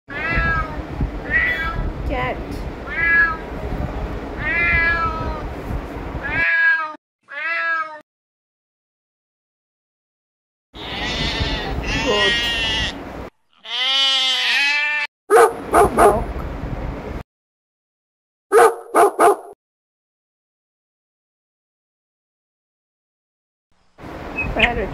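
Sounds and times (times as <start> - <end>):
cats meowing: 0.1 - 1.9, 2.8 - 3.4, 4.4 - 5.5, 6.2 - 8.0, 10.8 - 13.0, 13.6 - 15.1.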